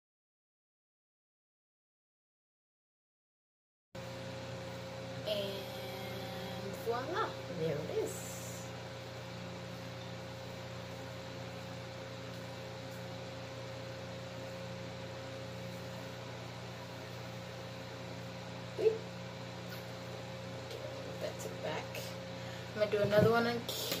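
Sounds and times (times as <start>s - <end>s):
low electrical hum: 4.0s - 24.0s.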